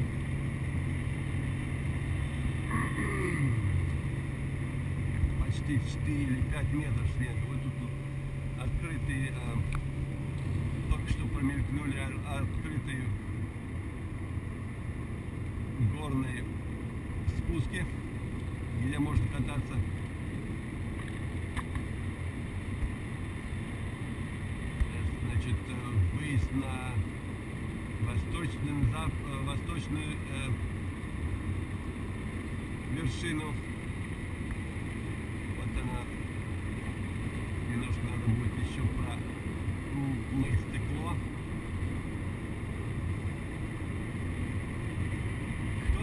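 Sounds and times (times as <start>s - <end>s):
car engine and tyre rumble: 0.0s - 46.0s.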